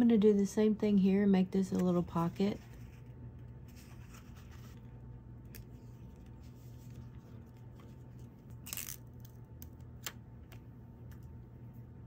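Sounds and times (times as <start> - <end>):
steady low hum: 0.0 - 12.0
paper rustling: 3.7 - 4.8.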